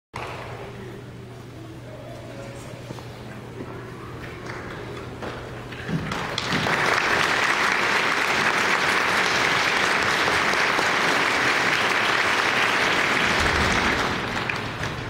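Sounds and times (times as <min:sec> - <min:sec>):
audience applause: 0:04.2 - 0:15.0.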